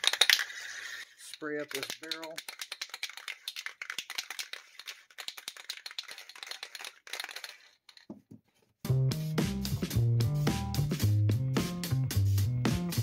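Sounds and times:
spray can ball rattling: 0.0s - 8.2s
background music with guitar: 8.9s - 13.0s.

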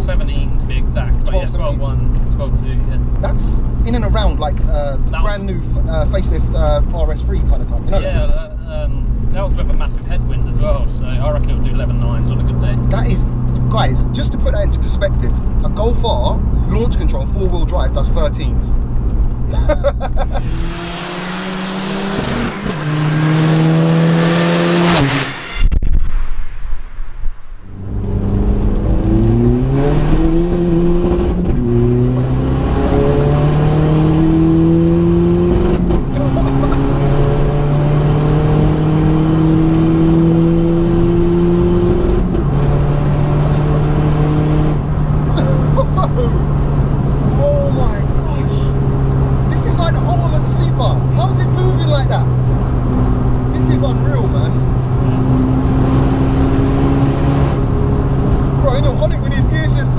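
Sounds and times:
diesel car engine accelerating: 0.0s - 25.8s, 27.7s - 59.9s.

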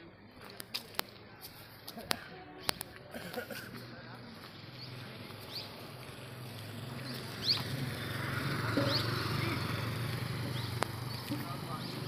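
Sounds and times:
motorcycle engine approaching: 4.4s - 12.0s
bird chirps: 4.7s - 5.8s, 8.8s - 9.8s.

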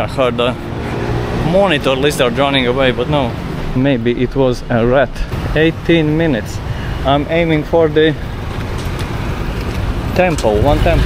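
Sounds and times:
road traffic rumble: 0.0s - 11.0s.

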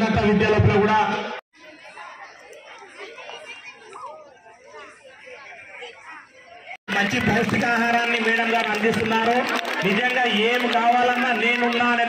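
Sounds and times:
background chatter of people: 0.0s - 12.0s
man narrating: 6.9s - 12.0s.

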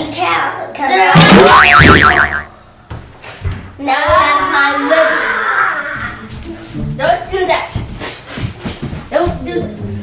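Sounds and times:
cartoon boing: 1.2s - 2.5s
children's voices: 3.8s - 6.2s.

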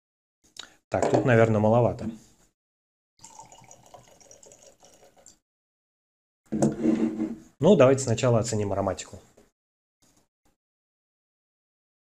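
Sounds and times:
liquid pouring into glass: 3.2s - 5.4s.

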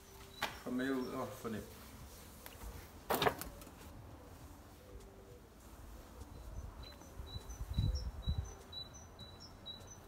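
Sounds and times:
small bird chirping: 6.3s - 10.0s.

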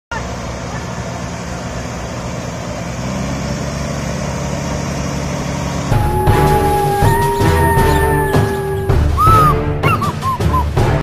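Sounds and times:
combine harvester engines running: 0.1s - 10.8s.

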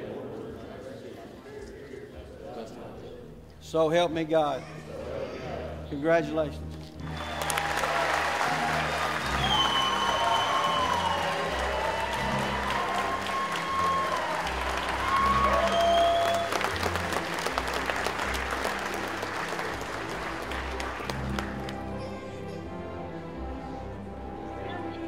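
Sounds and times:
music playing: 5.8s - 25.0s
audience applauding: 7.0s - 22.4s.

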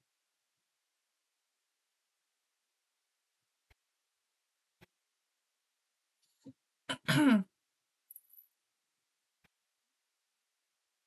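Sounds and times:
woman clearing her throat: 6.9s - 7.5s.

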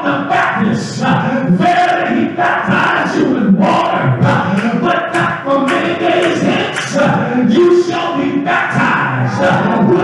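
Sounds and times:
congregation shouting praise: 0.0s - 10.0s
group singing: 0.0s - 10.0s.

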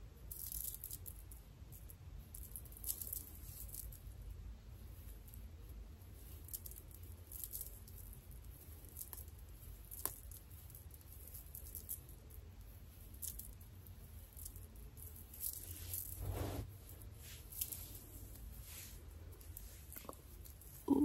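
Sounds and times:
low steady hum: 1.3s - 21.0s
hair rustling and crackling: 14.3s - 20.9s.

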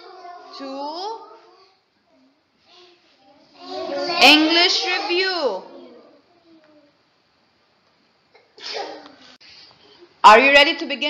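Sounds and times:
person sneezing: 8.6s - 9.1s.

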